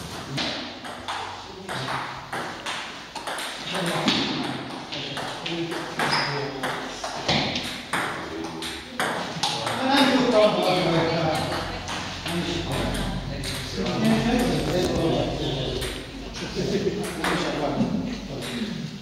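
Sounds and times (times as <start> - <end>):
table tennis balls clicking: 0.4 - 10.0.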